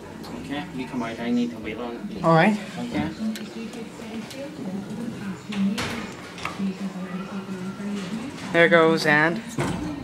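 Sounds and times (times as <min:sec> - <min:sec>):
indistinct background voices: 0:00.2 - 0:10.0.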